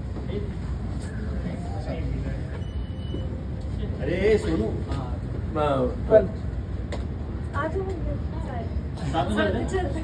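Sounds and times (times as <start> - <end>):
faint high beep: 2.5 - 3.5.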